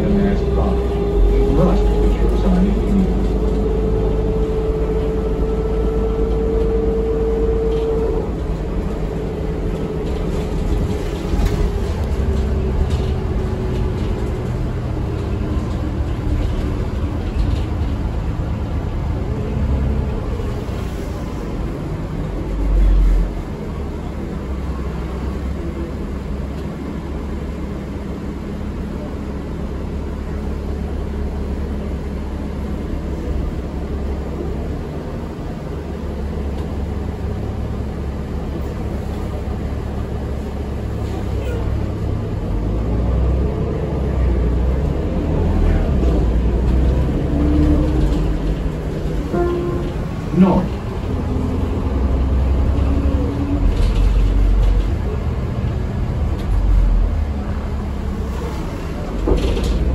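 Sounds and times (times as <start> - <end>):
bus diesel engine drone: 0.0 - 59.9
road rumble: 0.0 - 59.9.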